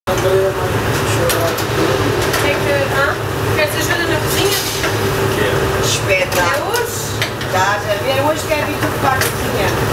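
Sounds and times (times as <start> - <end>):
ventilation hum: 0.1 - 9.9.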